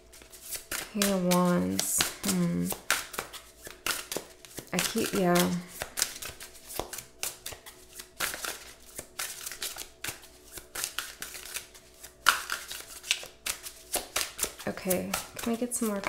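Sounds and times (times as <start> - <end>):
cards being shuffled: 0.1 - 16.0.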